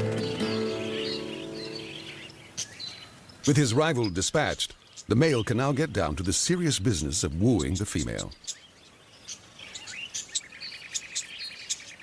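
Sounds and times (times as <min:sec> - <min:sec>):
bird trill: 0:00.0 - 0:12.0
small birds chirping: 0:00.0 - 0:12.0.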